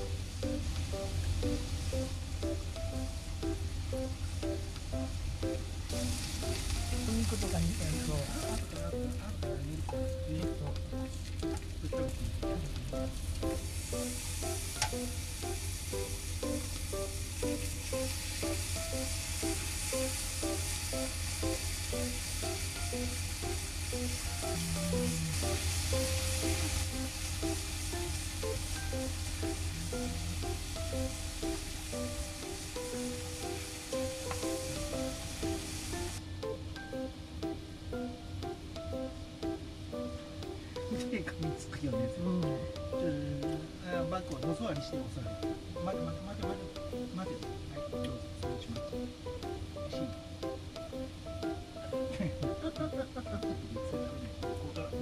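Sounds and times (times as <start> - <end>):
meat sizzling on a grill plate: 0.0 - 9.0, 12.5 - 36.2
background music with simple melody: 0.0 - 55.0.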